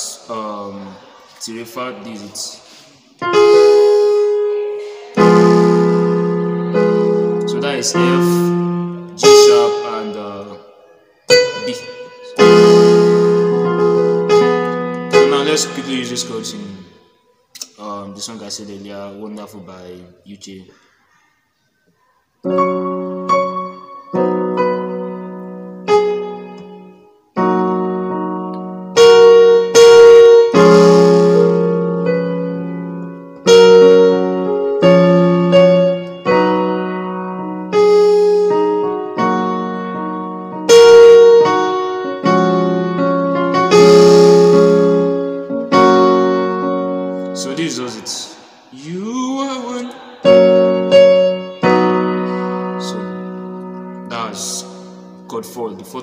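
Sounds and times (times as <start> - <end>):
man talking: 0.0 - 2.7, 7.4 - 8.6, 9.2 - 10.7, 11.4 - 12.4, 15.1 - 17.0, 17.6 - 20.8, 47.4 - 50.1, 52.8 - 53.2, 54.1 - 56.0
piano chords ringing: 3.2 - 17.5, 22.4 - 56.0.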